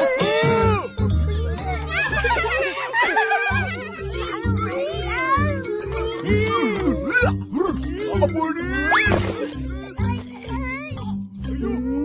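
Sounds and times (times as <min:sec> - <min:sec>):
background music with steady beat: 0:00.0 - 0:12.0.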